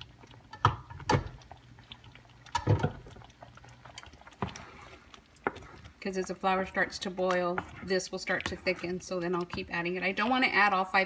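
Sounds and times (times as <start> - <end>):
sauce bubbling in a frying pan: 0.0 - 11.0
sharp knocks and plops: 0.5 - 1.4, 2.5 - 3.1.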